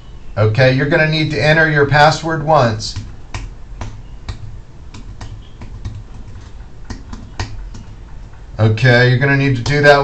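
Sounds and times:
computer keyboard keys clicking: 0:03.0 - 0:08.0.

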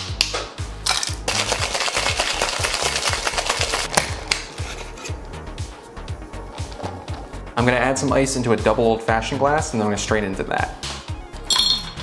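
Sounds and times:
background music: 0:00.0 - 0:12.0
ice cubes clinking into metal tin: 0:00.8 - 0:03.9
ice rattling in shaker: 0:00.9 - 0:03.9.

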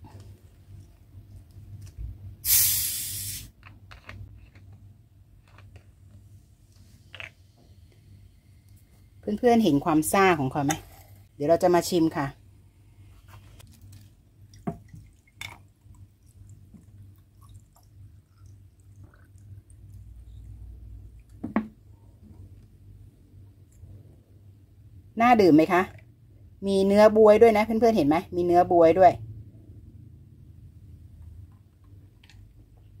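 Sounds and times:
gas hissing from bottle: 0:02.4 - 0:03.6
liquid pouring over ice: 0:13.7 - 0:20.3.

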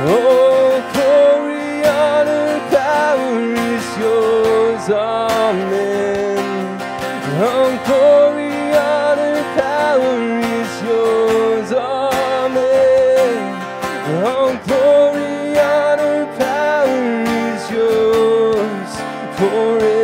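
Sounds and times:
man singing worship song: 0:00.0 - 0:20.0
strummed acoustic guitar: 0:00.0 - 0:20.0.

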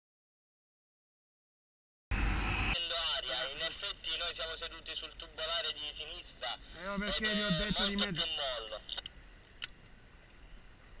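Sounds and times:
steady high-pitched hum: 0:02.1 - 0:11.0
man speaking: 0:02.8 - 0:09.0.

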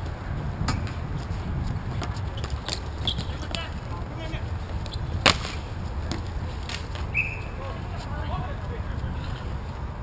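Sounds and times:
hockey stick sharp crack: 0:05.2 - 0:05.7.

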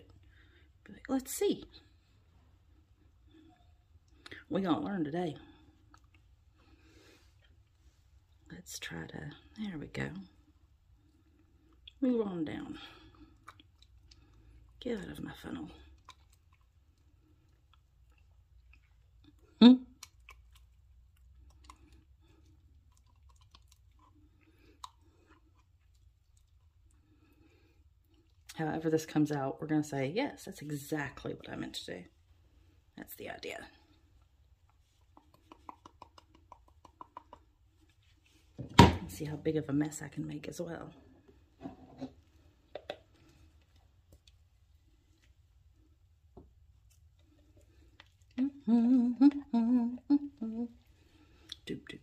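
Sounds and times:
person humming: 0:48.4 - 0:50.8.

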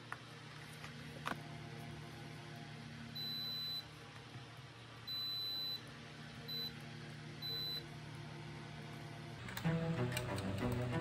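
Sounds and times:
multimeter continuity beeps: 0:03.2 - 0:03.9, 0:05.1 - 0:05.8, 0:06.5 - 0:06.8, 0:07.4 - 0:07.9.

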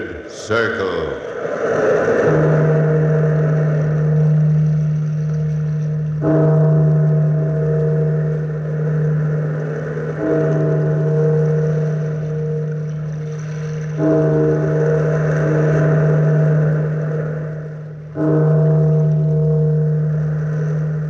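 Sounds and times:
large bell tolling: 0:00.0 - 0:21.0.

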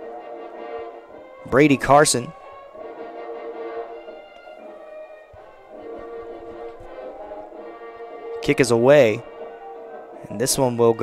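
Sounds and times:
music of long held notes: 0:00.0 - 0:11.0.

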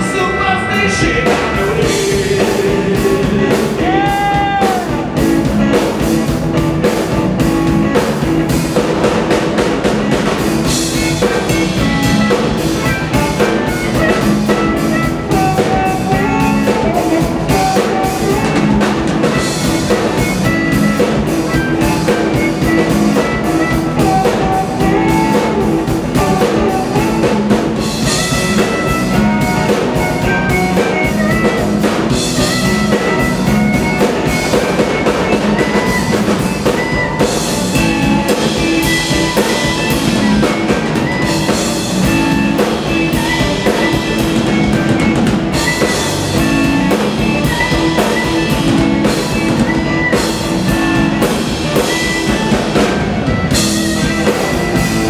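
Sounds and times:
drum kit: 0:00.0 - 0:55.0
electric bass: 0:00.0 - 0:55.0
electric guitar: 0:00.0 - 0:55.0
harmonica: 0:00.0 - 0:55.0.

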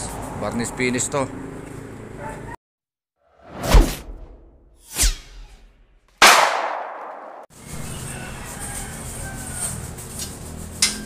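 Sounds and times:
outdoor background noise: 0:00.0 - 0:02.6, 0:05.4 - 0:11.0.

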